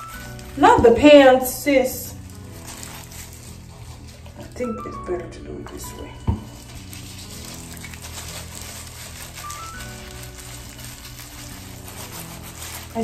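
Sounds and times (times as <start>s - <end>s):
fine crackling of hair dye: 0.0s - 13.0s
soft background music: 0.0s - 13.0s.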